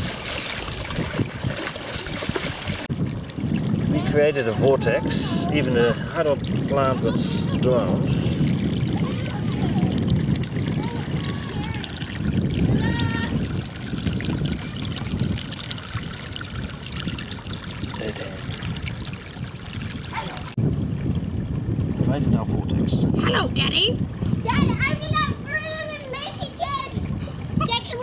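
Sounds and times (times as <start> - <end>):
stream water trickling: 0.0 - 28.0
low rumble: 2.9 - 24.5.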